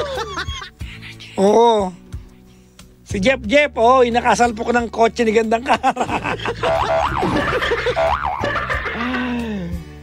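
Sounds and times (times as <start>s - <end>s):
man laughing: 0.0s - 0.7s, 5.6s - 9.7s
wobbling comic sound effect: 6.7s - 8.6s.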